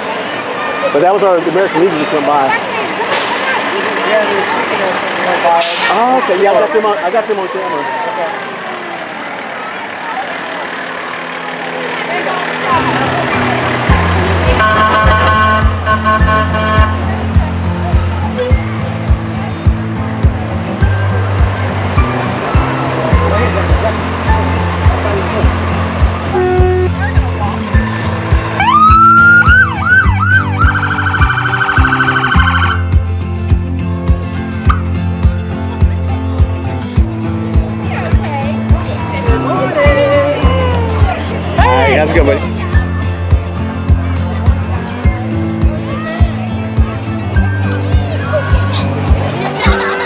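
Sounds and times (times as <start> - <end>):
street and crowd noise: 0.0 - 50.0
emergency vehicle siren: 7.3 - 11.5, 14.4 - 16.9, 28.6 - 32.9
music with heavy bass beat: 12.7 - 42.0, 42.7 - 50.0.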